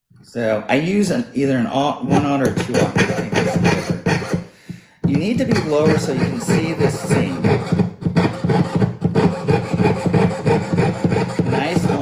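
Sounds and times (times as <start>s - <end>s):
saw cutting metal sheet: 2.2s - 4.5s, 5.2s - 12.0s.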